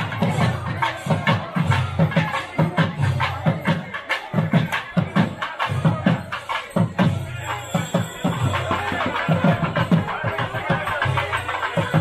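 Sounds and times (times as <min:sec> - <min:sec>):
drum beating: 0:00.0 - 0:12.0.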